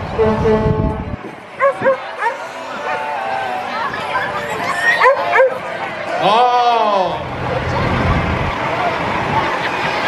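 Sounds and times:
dog barking: 1.6 - 3.0, 5.0 - 5.6.

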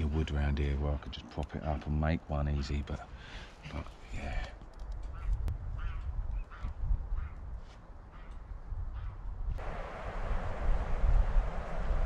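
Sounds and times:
wind noise on microphone: 4.8 - 12.0.

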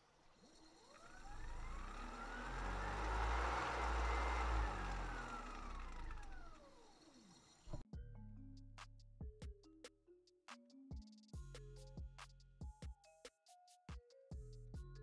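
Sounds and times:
vehicle driving past: 0.5 - 7.1.

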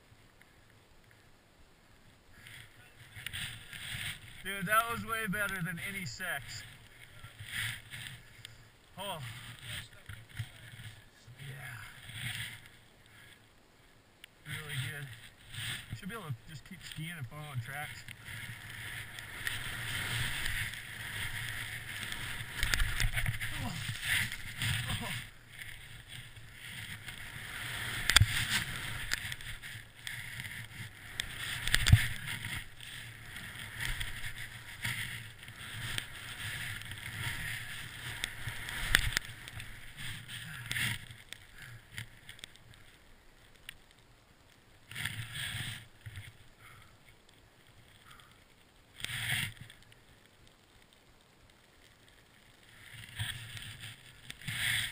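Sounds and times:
skis hissing through powder snow: 2.4 - 13.4, 14.4 - 43.0, 45.0 - 46.0, 52.4 - 54.9.

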